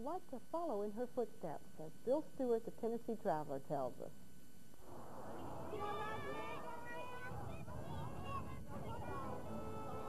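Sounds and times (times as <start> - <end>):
children calling out: 5.4 - 10.0.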